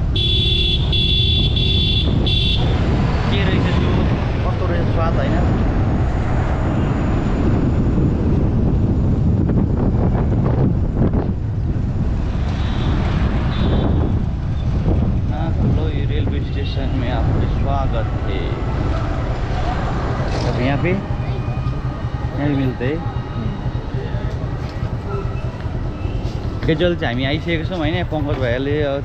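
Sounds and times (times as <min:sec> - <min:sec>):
city traffic: 0:00.0 - 0:29.0
motorcycle engine rumble: 0:00.0 - 0:29.0
vehicle horn honking: 0:00.2 - 0:02.8, 0:12.6 - 0:14.2.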